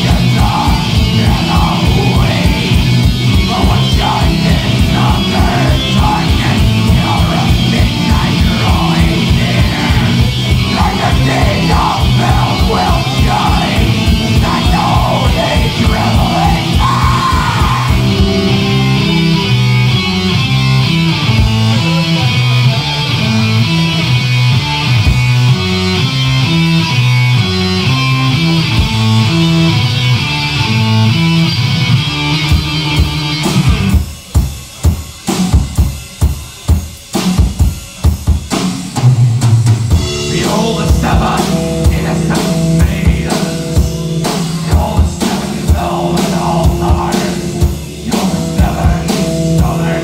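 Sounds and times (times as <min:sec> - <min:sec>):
bass notes: 0:00.0 - 0:34.8, 0:38.9 - 0:50.0
distorted guitar riff: 0:00.0 - 0:36.0, 0:39.8 - 0:50.0
drums: 0:00.0 - 0:50.0.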